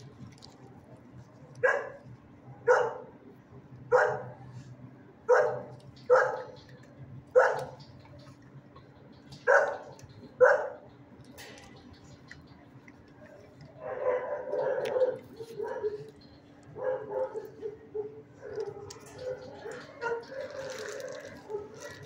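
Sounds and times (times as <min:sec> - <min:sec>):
dog barking: 0:01.6 - 0:02.0, 0:02.6 - 0:03.1, 0:03.9 - 0:04.4, 0:05.3 - 0:06.6, 0:07.3 - 0:07.8, 0:09.4 - 0:10.8, 0:13.8 - 0:16.1, 0:16.8 - 0:22.0.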